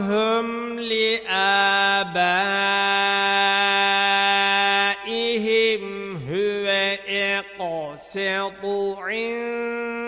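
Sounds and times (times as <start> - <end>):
person reciting in long sung notes: 0.0 - 10.0.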